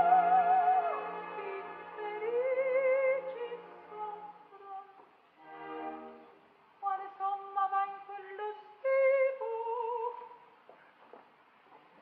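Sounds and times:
woman singing opera: 0:00.0 - 0:05.1, 0:06.8 - 0:10.5.

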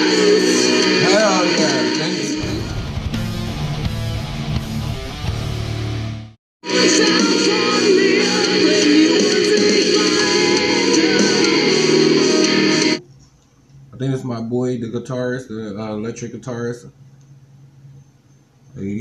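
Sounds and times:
woman singing: 0:00.0 - 0:02.4, 0:06.7 - 0:13.0
metal song with distorted guitars: 0:00.0 - 0:13.0.

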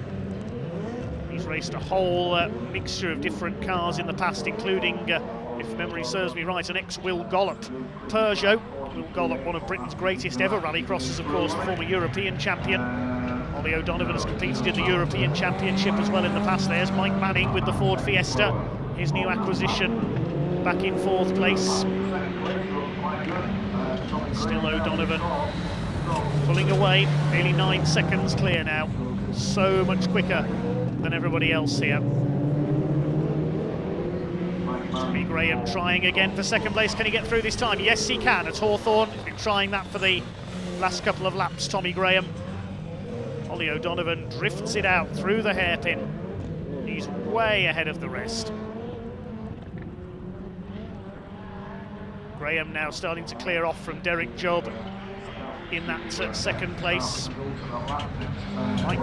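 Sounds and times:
racing car engines: 0:00.0 - 0:59.0.

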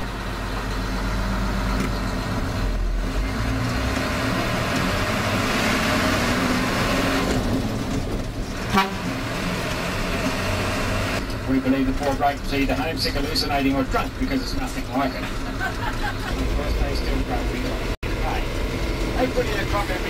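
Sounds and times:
diesel coach engine running: 0:00.0 - 0:20.0
road noise: 0:00.0 - 0:20.0.

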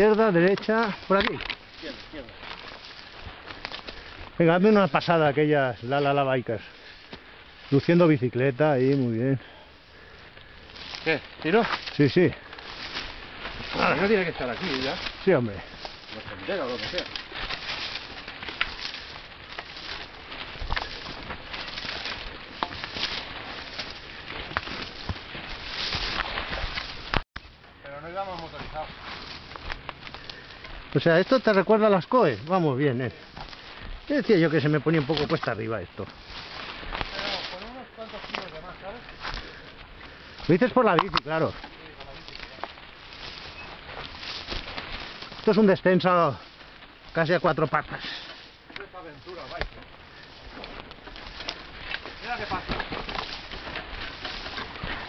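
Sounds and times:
faint clicks and rustles: 0:00.0 - 0:55.0
footsteps crunching through dry leaves: 0:00.0 - 0:55.0.

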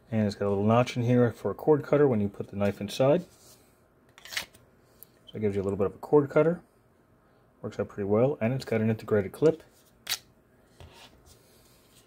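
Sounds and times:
knife scraping out of sheath: 0:04.2 - 0:04.6.

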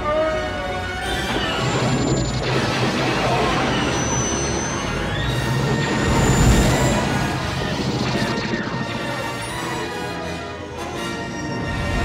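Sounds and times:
crashing and rumbling effects: 0:01.3 - 0:09.8.

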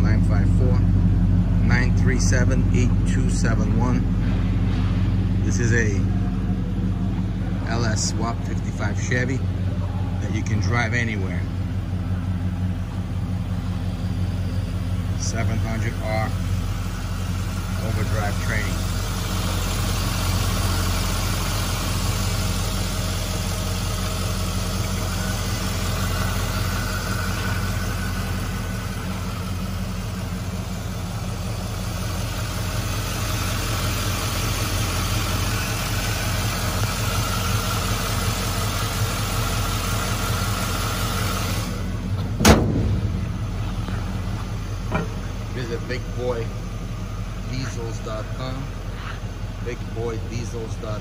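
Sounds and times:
car engine idling: 0:00.0 - 0:51.0
car hood thud: 0:42.2 - 0:43.5.

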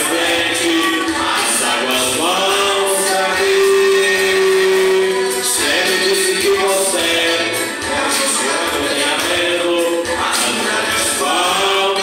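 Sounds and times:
young man singing gospel: 0:00.0 - 0:12.0.

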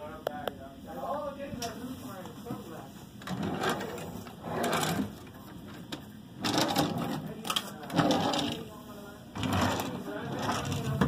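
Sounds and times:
indistinct talking: 0:00.0 - 0:11.0
wooden drawers sliding: 0:03.2 - 0:05.2, 0:07.9 - 0:08.6, 0:09.4 - 0:11.0.

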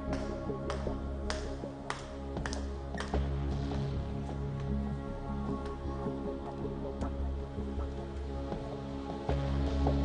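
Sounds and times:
light tapping beat: 0:00.0 - 0:03.8.

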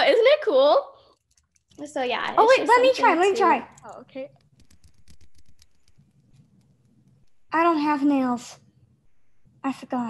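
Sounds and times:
rapid light tapping: 0:03.6 - 0:07.7.

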